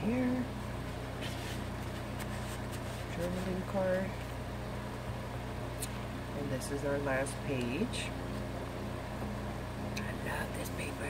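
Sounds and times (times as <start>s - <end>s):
low appliance hum: 0.0s - 11.0s
paper page rustling: 1.2s - 3.7s.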